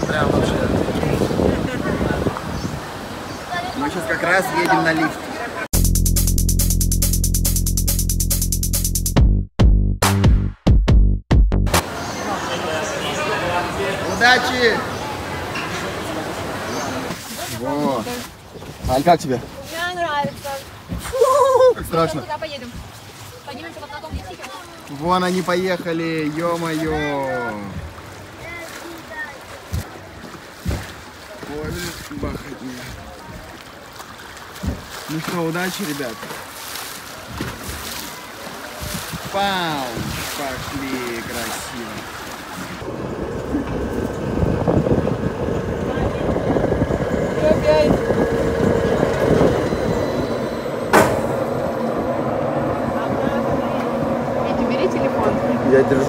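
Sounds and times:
wind on microphone: 0:00.0 - 0:03.6, 0:38.7 - 0:41.5, 0:42.6 - 0:56.0
ride car rushing rumble: 0:42.8 - 0:56.0
sharp knock: 0:50.9 - 0:51.4
brief thumps: 0:50.9 - 0:51.5.

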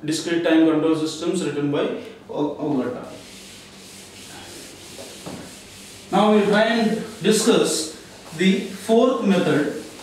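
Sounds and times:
rubbing on a whiteboard: 0:03.0 - 0:10.0.

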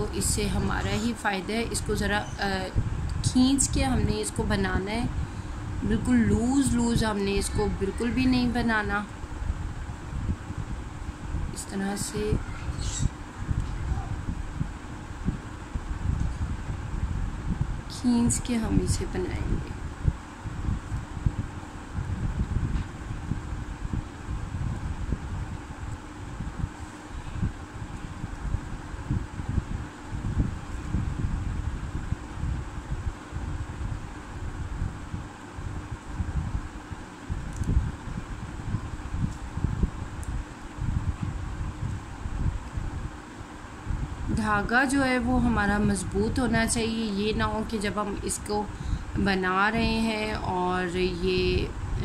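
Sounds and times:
faint steady hum: 0:00.0 - 0:52.0
fan air buffeting microphone: 0:00.0 - 0:52.0.

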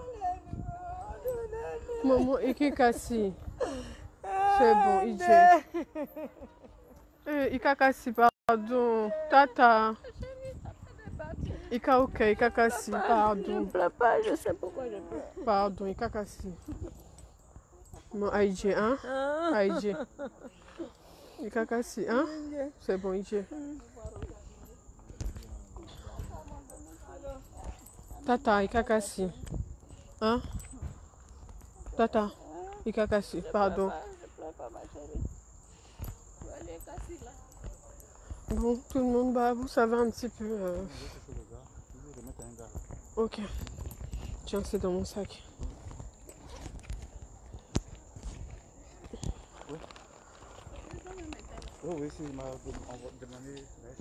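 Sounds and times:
footsteps on pavement: 0:23.4 - 0:33.3, 0:35.8 - 0:54.0.

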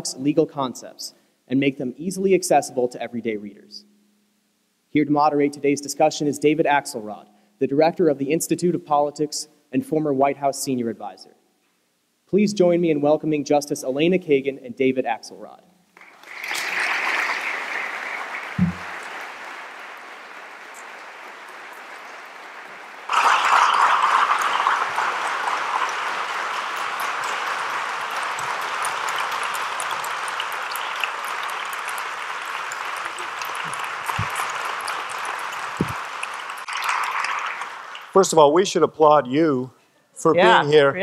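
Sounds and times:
audience applauding: 0:16.0 - 0:38.6
low thumps: 0:18.6 - 0:18.9.

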